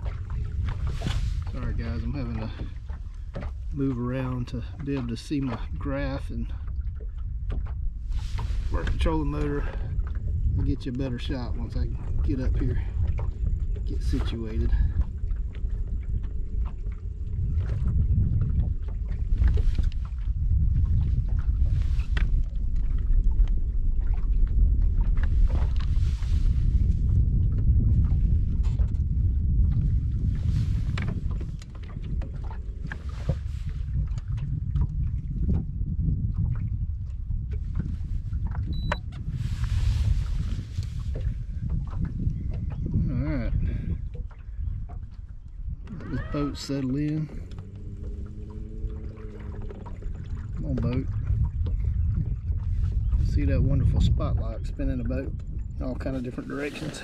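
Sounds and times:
water slapping against hull: 0.0s - 57.0s
wind rumbling on microphone: 0.0s - 57.0s.

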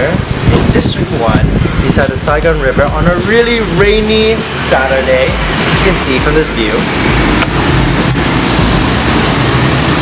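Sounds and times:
city traffic hum: 0.0s - 10.0s
heavy rain falling: 3.6s - 10.0s.

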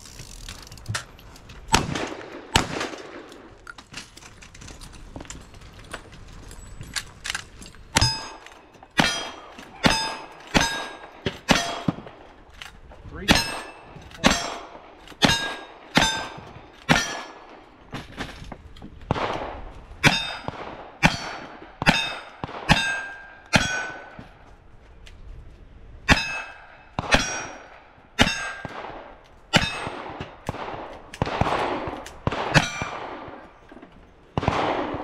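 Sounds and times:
steel plate ringing: 8.0s - 11.9s, 15.2s - 17.4s, 21.1s - 24.1s, 26.1s - 28.6s.

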